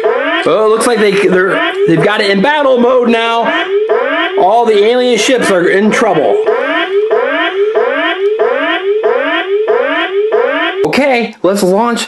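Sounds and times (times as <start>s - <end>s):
toy electronic siren whoop: 0.0s - 0.6s, 3.5s - 4.4s, 6.4s - 10.9s.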